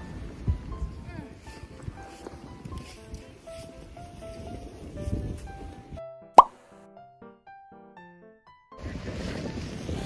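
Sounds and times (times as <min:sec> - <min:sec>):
wind rumbling on microphone: 0:00.0 - 0:06.0, 0:08.8 - 0:10.0.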